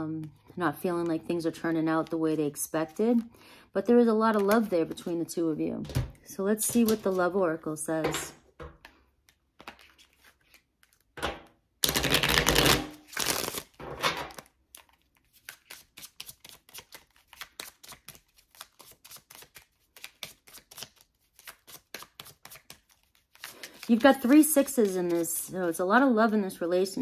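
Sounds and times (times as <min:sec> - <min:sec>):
cards being shuffled: 0:06.7 - 0:07.2, 0:08.8 - 0:11.1, 0:11.8 - 0:25.3.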